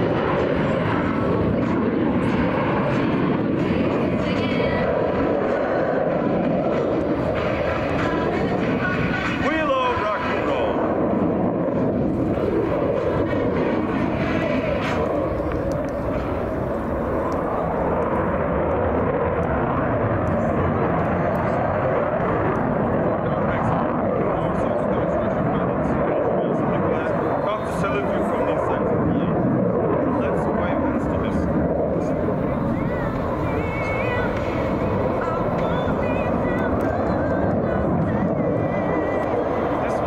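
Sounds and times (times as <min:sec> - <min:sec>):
fighter jet engine roar: 0:00.0 - 0:40.0.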